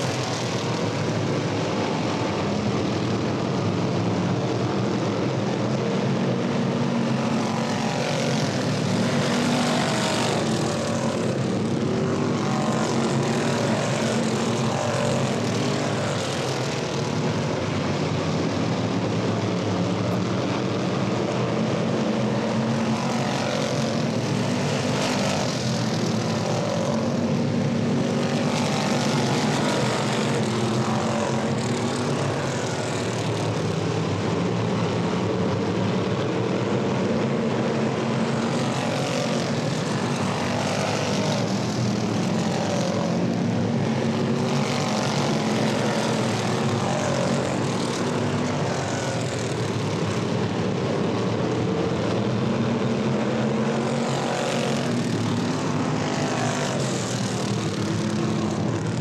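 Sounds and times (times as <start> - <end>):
race car engines droning: 0.0 - 59.0.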